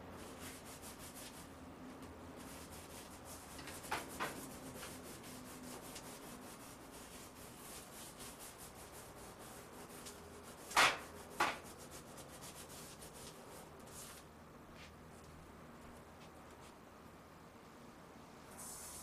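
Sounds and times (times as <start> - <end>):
scraping strokes on counter: 2.4 - 14.2.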